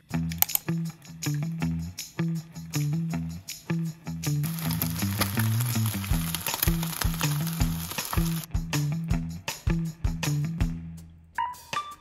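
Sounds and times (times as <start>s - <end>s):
background music with bass line: 0.0s - 12.0s
eggs sizzling in a pan: 4.4s - 8.5s.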